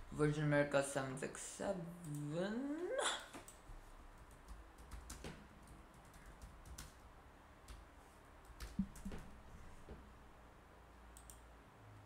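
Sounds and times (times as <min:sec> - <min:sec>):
person laughing: 0:02.8 - 0:03.3
computer keyboard typing: 0:04.2 - 0:07.0, 0:08.4 - 0:09.3.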